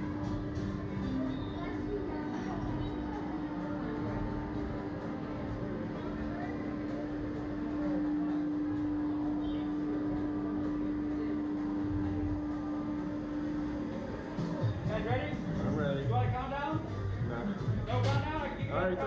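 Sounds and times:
background music: 0.0 - 19.0
faint voices: 0.0 - 19.0
ride machine hum: 0.0 - 19.0.

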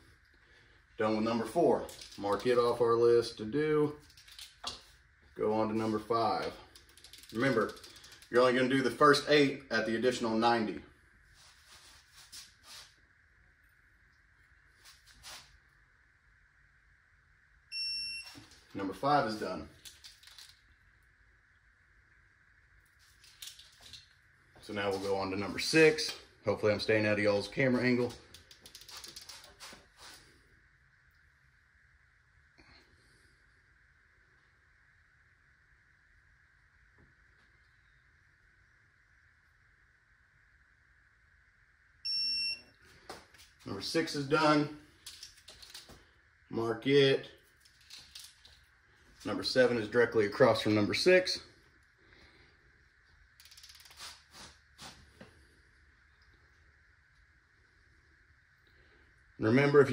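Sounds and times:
faint steady hiss: 0.0 - 59.9
high electronic beep: 17.7 - 18.4, 42.1 - 42.6
torque wrench clicks: 53.4 - 54.0.

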